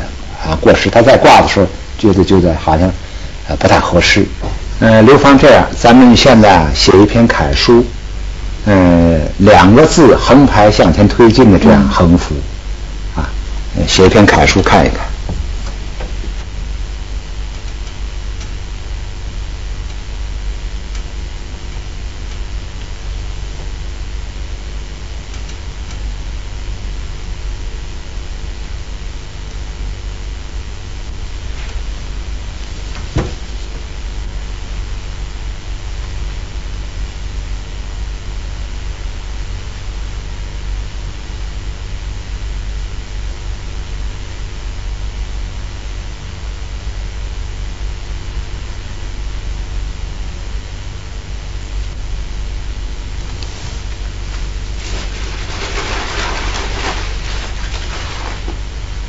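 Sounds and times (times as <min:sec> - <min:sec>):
low hum: 0:00.0 - 0:59.0
steady hiss: 0:00.0 - 0:59.0.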